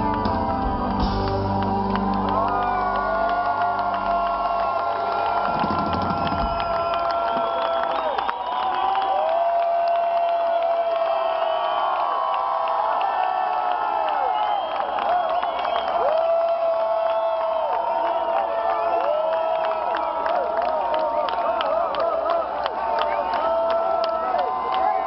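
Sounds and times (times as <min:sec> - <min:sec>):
crowd cheering and whooping: 0:00.0 - 0:25.0
scattered clapping: 0:00.0 - 0:25.0.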